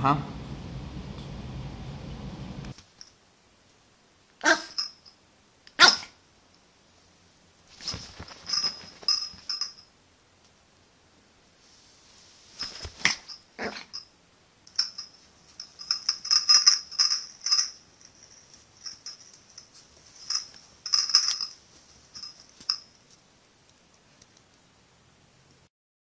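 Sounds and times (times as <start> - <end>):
small dog barking: 4.4 - 4.8, 5.8 - 6.2
small bell jingling: 4.6 - 5.2, 7.8 - 9.9, 12.6 - 23.1.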